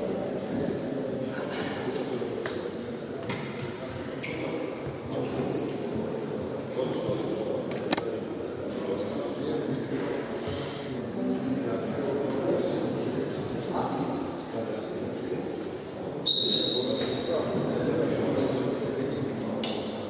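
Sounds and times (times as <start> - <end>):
voices murmuring in a hall: 0.0 - 20.0.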